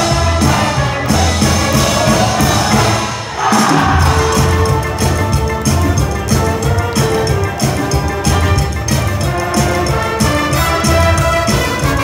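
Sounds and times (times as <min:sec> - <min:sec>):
wind band playing: 0:00.0 - 0:12.0.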